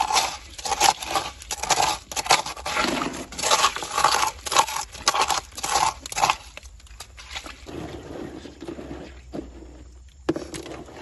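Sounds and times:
hand scraping wet gravel: 0.0s - 11.0s
stones and water shifting: 0.0s - 11.0s.

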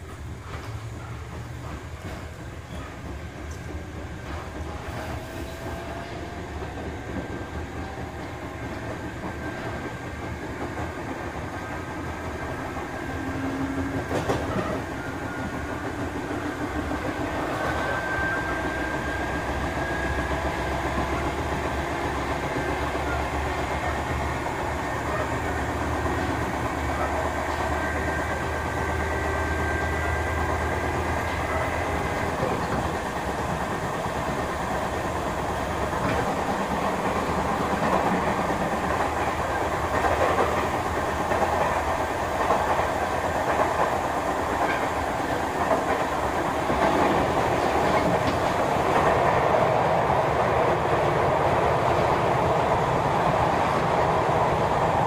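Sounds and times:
train rumbling with wheel clatter: 0.0s - 55.0s.

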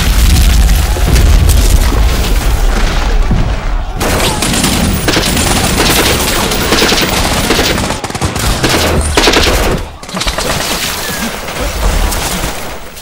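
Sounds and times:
deep explosion booms: 0.0s - 4.2s
rapid crackling gunfire: 0.0s - 13.0s.

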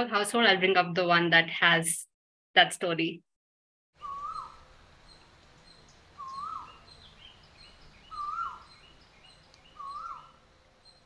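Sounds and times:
bird whistling call: 4.0s - 4.6s, 5.7s - 7.0s, 8.0s - 8.9s, 9.6s - 10.4s.

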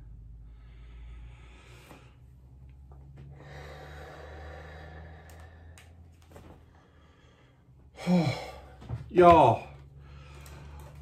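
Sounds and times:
low steady hum: 0.0s - 11.0s
man sighing: 7.9s - 8.9s.

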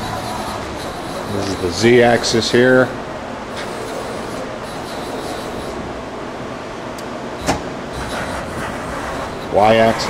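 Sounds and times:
machining center running: 0.0s - 10.0s.

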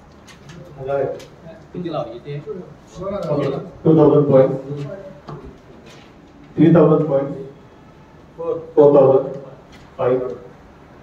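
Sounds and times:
man speaking loudly: 0.8s - 5.2s, 8.4s - 10.5s.

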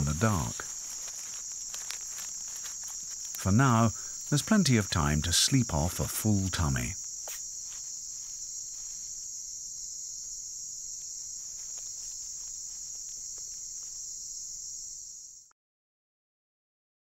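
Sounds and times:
night insects chorus: 0.0s - 15.5s.

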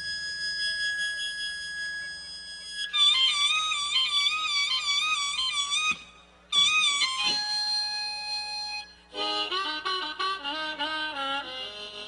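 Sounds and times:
harmonica holding a high note: 0.0s - 12.0s.

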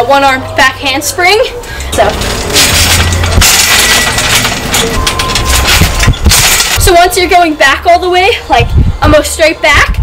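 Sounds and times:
wind buffeting microphone: 8.4s - 10.0s.

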